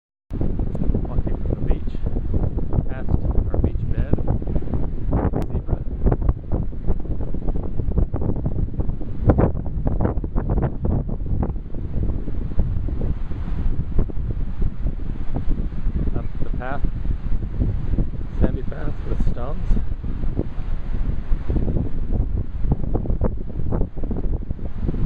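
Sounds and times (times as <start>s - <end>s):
wind buffeting microphone: 0.3s - 25.0s.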